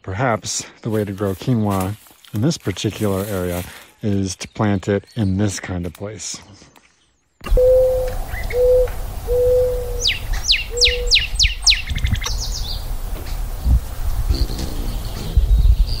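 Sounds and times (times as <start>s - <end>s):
songbird trill: 4.0s - 13.4s, 14.2s - 16.0s
high falling whistles: 7.4s - 11.9s
low hooting coo: 7.5s - 11.2s, 14.3s - 15.6s.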